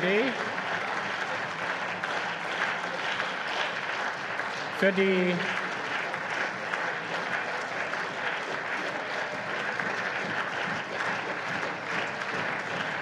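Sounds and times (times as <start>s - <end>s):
crowd clapping: 0.0s - 13.0s.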